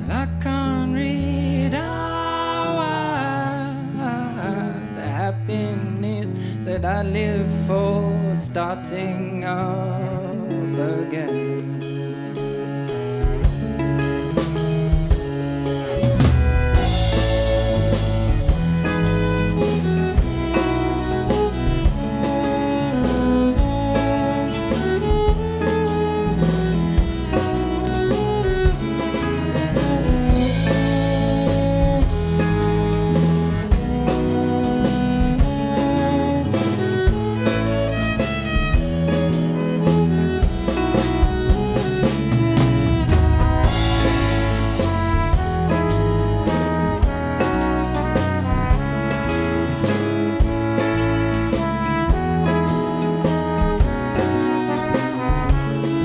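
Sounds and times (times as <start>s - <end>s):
bass line: 0.0s - 56.0s
live band music: 0.0s - 56.0s
drum kit beat: 12.2s - 56.0s.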